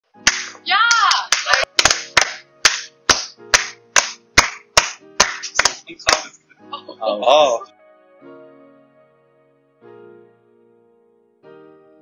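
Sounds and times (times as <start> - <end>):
people clapping hands: 0.3 - 6.3.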